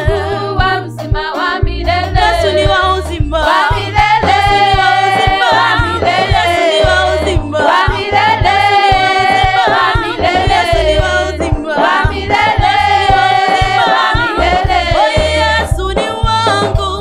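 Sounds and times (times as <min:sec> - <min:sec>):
female vocal group singing in harmony: 0:00.0 - 0:17.0
low bass line: 0:00.0 - 0:17.0.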